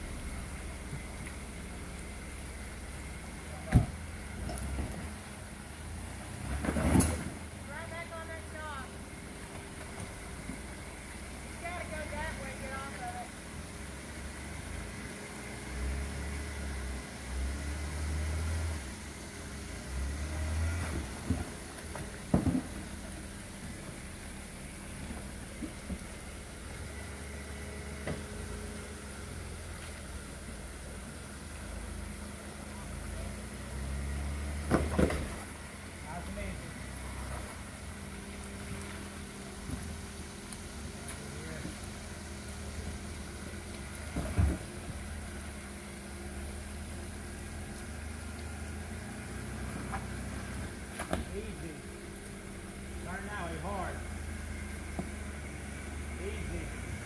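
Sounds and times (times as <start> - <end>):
engine idling and revving: 0.0 - 57.0.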